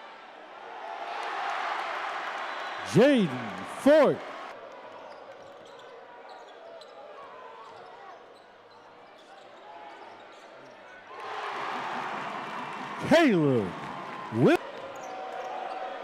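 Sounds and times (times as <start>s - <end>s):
crowd murmur: 2.8s - 4.2s, 13.0s - 14.6s.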